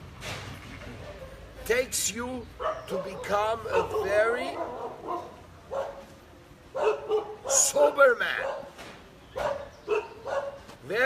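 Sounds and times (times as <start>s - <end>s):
dog barking: 1.0s - 1.5s, 2.6s - 6.1s, 6.7s - 8.8s, 9.4s - 10.7s.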